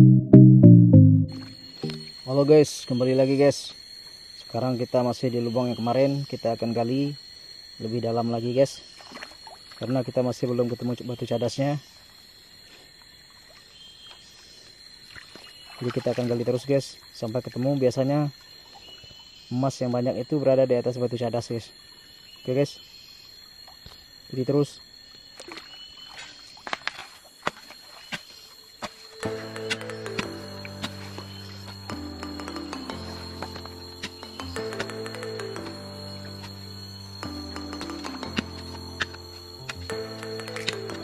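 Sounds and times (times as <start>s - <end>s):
background music with sustained chords: 0.0s - 2.4s, 29.2s - 41.0s
hands scooping gravel: 28.8s - 31.8s
stones and gravel clicking: 37.8s - 41.0s.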